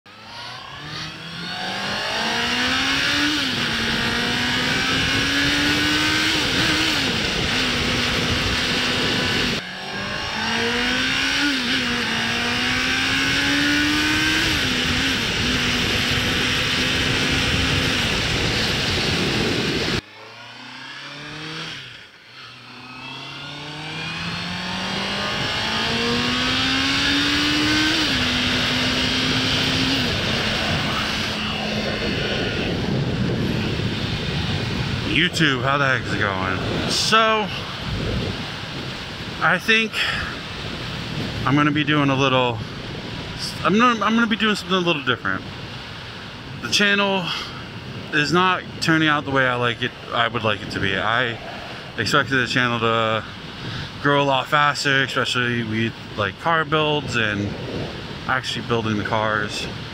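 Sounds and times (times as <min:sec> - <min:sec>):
wind rushing: 0:00.1 - 0:46.7, 0:50.0 - 0:54.0, 0:57.0 - 0:58.4
motorcycle engine revving through gears: 0:00.1 - 0:46.8.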